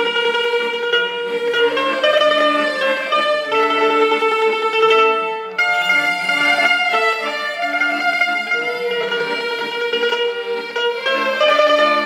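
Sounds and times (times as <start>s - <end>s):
two-stringed fiddles: 0.0s - 12.0s
accordion: 1.2s - 12.0s.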